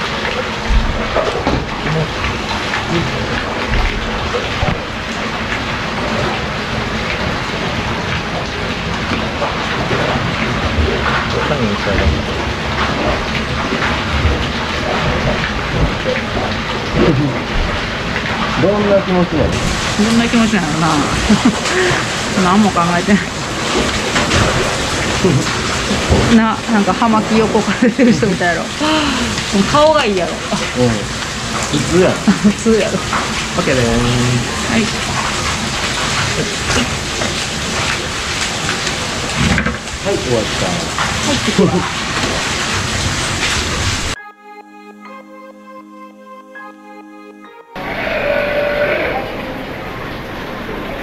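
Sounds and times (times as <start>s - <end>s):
falling water rushing: 0.0s - 44.2s, 47.8s - 51.0s
low voice-like sound: 2.9s - 3.4s, 17.0s - 17.5s, 30.6s - 31.1s
sea lion bleating call: 47.8s - 49.7s.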